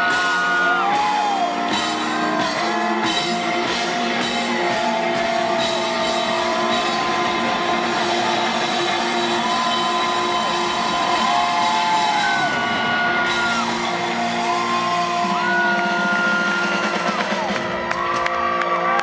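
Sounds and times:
rock band playing: 0.0s - 19.0s
electric guitar bending notes: 1.6s - 18.0s.

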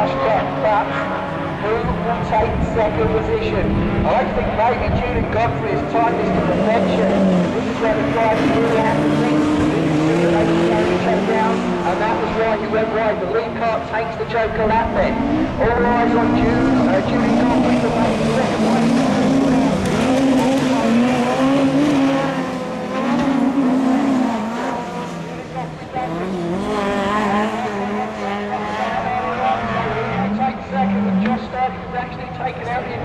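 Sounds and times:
racing car engines revving: 0.0s - 33.0s.

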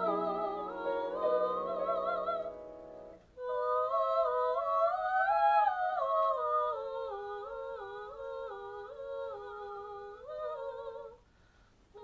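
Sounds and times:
two sopranos singing in harmony: 0.0s - 11.2s.

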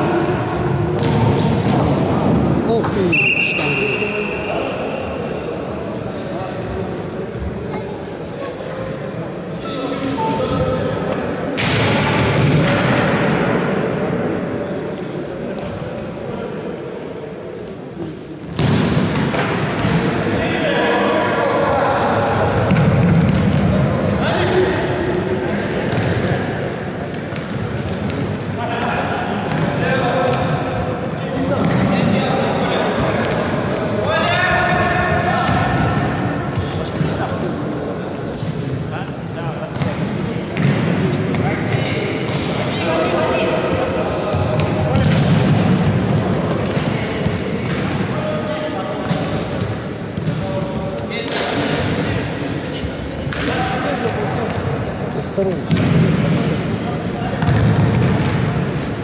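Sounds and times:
ball kicked and bouncing: 57.4s - 58.4s.

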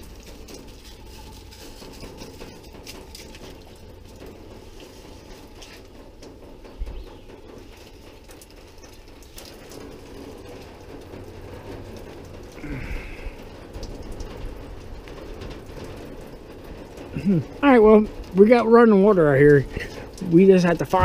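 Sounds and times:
water pattering from shower head: 0.0s - 21.0s.

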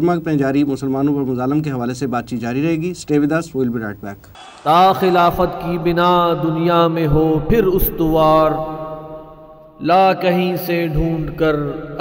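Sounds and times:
man chanting verse: 4.6s - 9.0s.

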